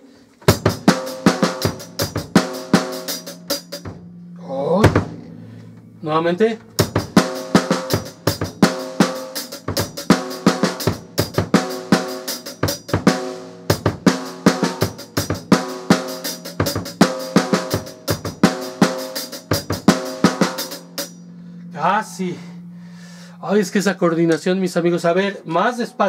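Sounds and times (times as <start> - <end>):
bass drum kicks: 0.5 - 6.0, 6.6 - 11.8, 16.5 - 18.6.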